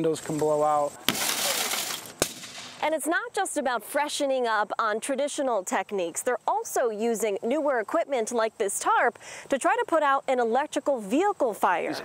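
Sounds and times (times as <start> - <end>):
sharp crack: 1.0 - 2.9.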